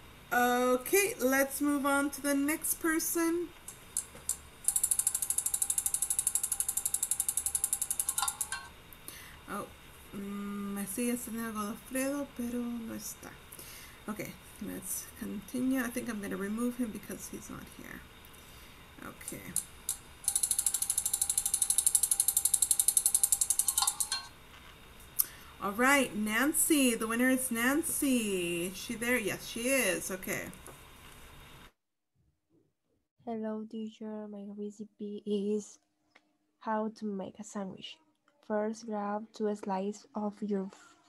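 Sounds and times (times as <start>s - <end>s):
spinning wheel rapid clicks: 4.0s - 8.7s, 19.2s - 24.3s.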